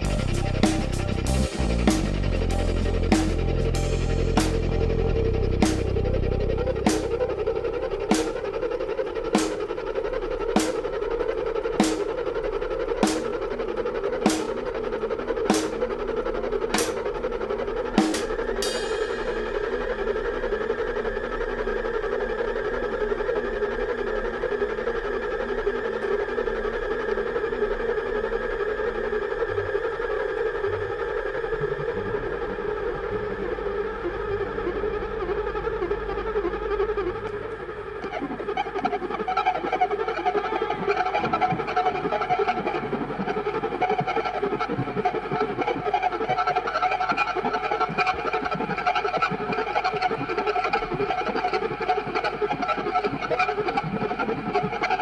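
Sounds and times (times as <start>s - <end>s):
sustained droning chords: 0.0s - 55.0s.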